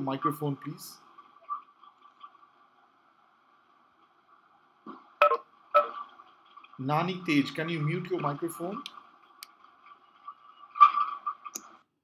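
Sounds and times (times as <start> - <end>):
faint steady hum: 0.0 - 11.8.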